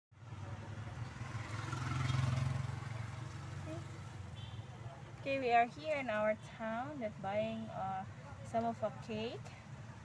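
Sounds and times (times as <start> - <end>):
motorcycle engine running: 0.2 - 4.5.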